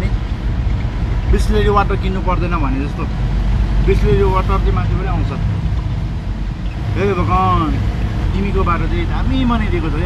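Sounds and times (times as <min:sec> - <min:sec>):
car engine and tyres on wet road: 0:00.0 - 0:10.0.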